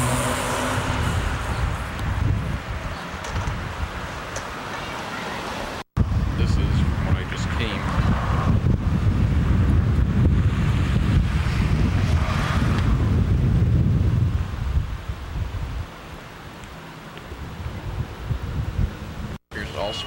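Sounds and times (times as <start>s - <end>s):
wind buffeting microphone: 0.0s - 4.6s, 6.0s - 16.0s, 17.2s - 19.4s.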